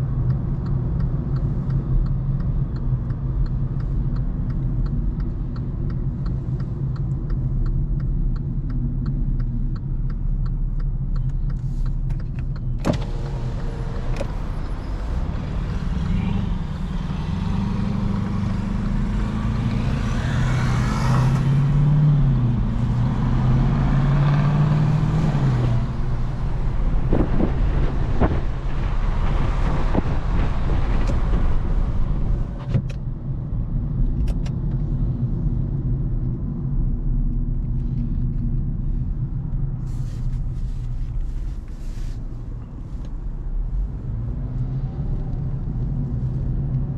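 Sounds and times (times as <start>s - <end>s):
car engine accelerating: 0.0s - 46.9s.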